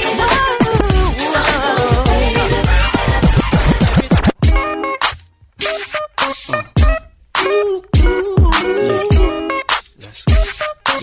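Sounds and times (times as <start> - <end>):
chopped hip hop beat: 0.0 - 11.0
dj scratching: 0.1 - 4.5, 5.6 - 7.5.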